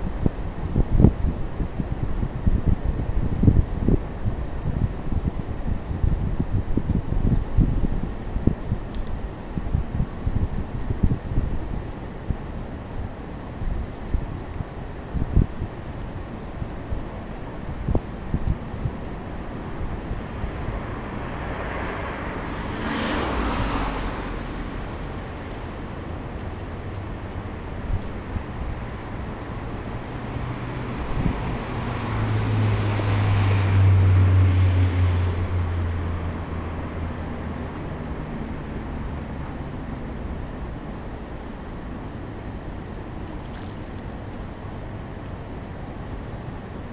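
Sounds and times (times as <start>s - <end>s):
wind buffeting microphone: 0.0s - 45.4s
low engine hum: 0.0s - 46.9s
vehicle passing: 19.1s - 41.4s.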